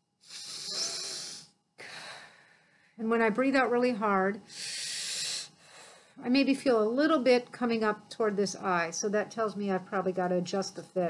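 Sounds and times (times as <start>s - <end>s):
breathing through respirator mask: 0.2s - 3.0s, 4.5s - 6.2s.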